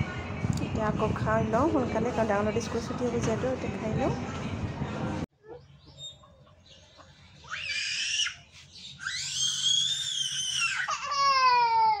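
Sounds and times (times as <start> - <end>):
young child shrieking: 7.5 - 8.4, 9.0 - 12.0.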